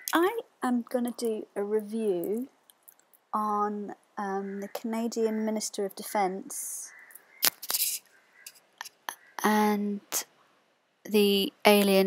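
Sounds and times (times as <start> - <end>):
scratchy cable rustle: 7.4 - 9.2.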